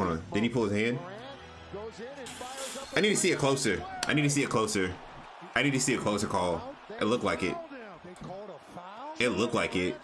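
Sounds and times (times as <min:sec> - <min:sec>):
commentator talking: 0:00.0 - 0:10.0
arena crowd: 0:00.1 - 0:10.0.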